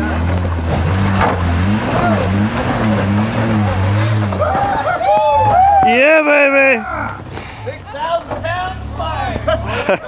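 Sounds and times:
truck engine running low: 0.0s - 5.8s
people calling out: 3.7s - 7.3s.

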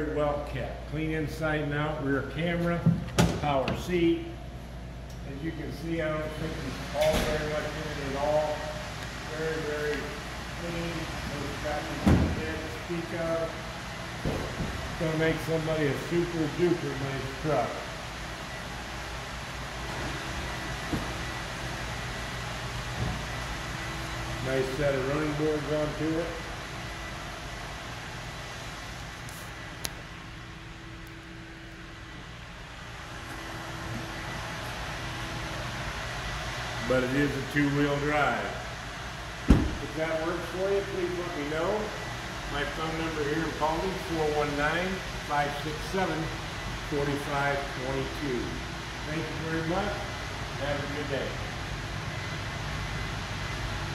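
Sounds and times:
heavy dull thump: 39.4s - 39.8s.

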